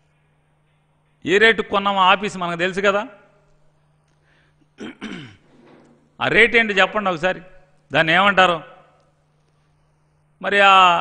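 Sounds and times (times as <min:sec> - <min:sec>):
man clearing his throat: 0:04.8 - 0:05.5.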